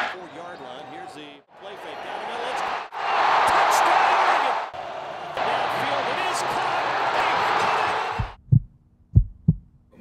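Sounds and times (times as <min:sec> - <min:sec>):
game crowd noise: 0:00.0 - 0:08.4
heartbeat thumps: 0:08.1 - 0:09.7.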